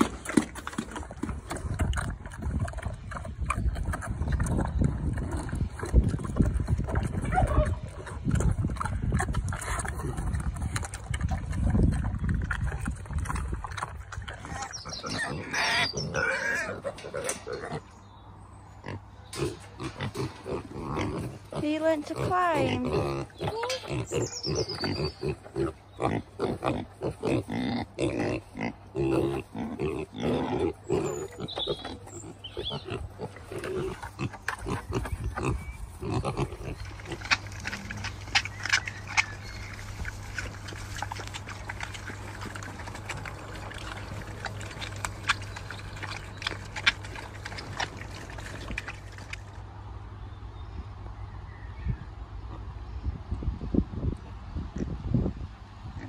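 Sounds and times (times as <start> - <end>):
piglets crunching food: 0.0 - 17.9, 18.8 - 50.0
piglets grunting and squealing: 0.0 - 17.9, 18.8 - 49.4
low steady rumble: 32.2 - 56.0.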